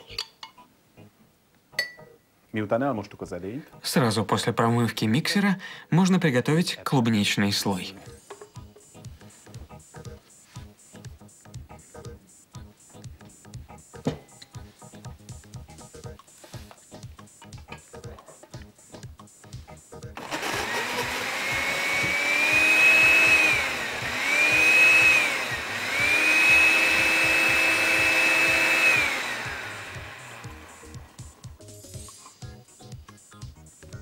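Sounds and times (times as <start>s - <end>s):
background music with steady beat: 2.9s - 34.0s
blender motor whining: 20.2s - 31.5s.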